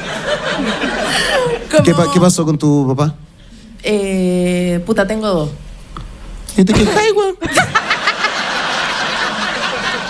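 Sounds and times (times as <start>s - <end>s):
woman laughing hard: 0.1s - 2.2s, 6.9s - 10.0s.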